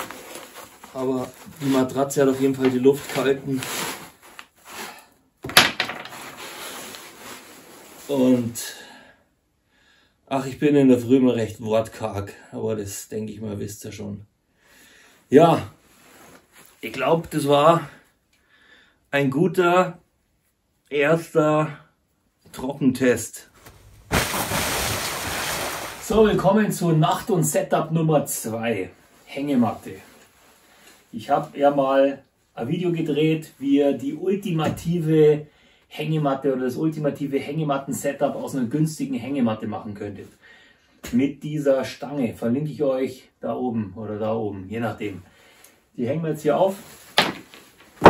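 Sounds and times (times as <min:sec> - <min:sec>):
sleeping bag and mat rustling: 0:00.0 - 0:05.0, 0:23.5 - 0:26.5
person splashing into pool: 0:24.0 - 0:26.0.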